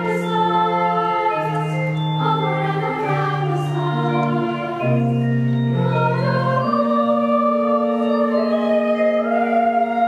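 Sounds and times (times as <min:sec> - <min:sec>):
church choir singing: 0:00.0 - 0:10.0
pipe organ: 0:00.0 - 0:10.0.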